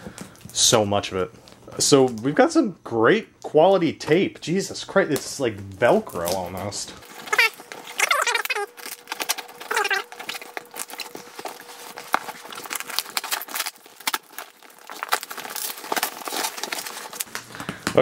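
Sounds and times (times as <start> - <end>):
tape ripping and crackling: 5.8 - 18.0
tape squealing: 7.0 - 18.0.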